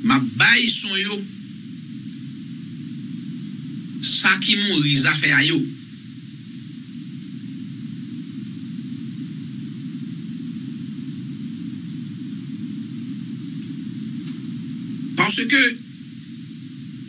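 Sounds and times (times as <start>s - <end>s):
background hiss: 0.0s - 17.0s
faint tick: 6.6s - 6.8s.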